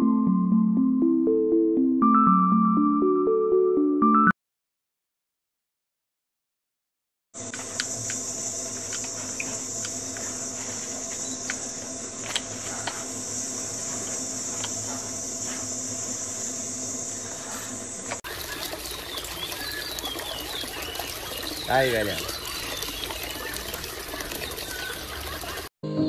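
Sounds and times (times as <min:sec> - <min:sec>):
high-pitched insect drone: 0:07.4 - 0:18.1
faint clicks and chirps: 0:11.2 - 0:11.7
trickling water: 0:18.1 - 0:25.7.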